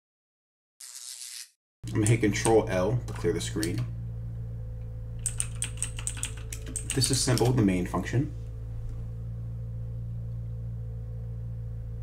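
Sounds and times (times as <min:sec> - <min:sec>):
low electrical hum: 0:01.8 - 0:12.0.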